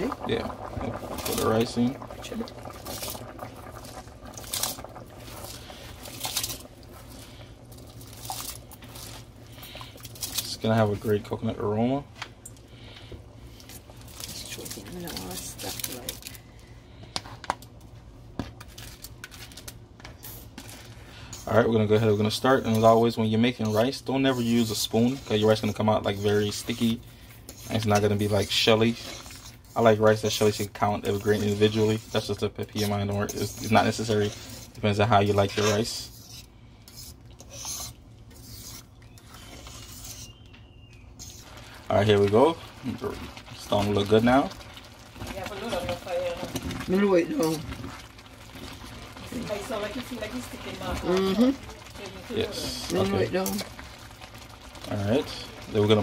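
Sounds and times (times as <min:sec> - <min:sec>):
low steady hum: 0:00.0 - 0:56.0
pot bubbling with pops: 0:00.0 - 0:56.0
fork scraping metal pot: 0:22.6 - 0:40.4, 0:41.2 - 0:41.5.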